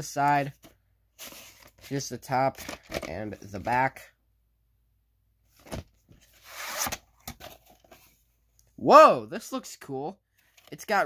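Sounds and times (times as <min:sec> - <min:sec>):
cassette scraping out of sleeve: 0:06.4 - 0:07.5.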